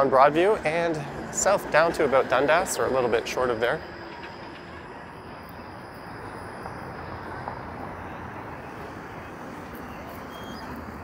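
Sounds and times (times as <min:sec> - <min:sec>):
streetcar running on tracks: 0:00.0 - 0:11.0.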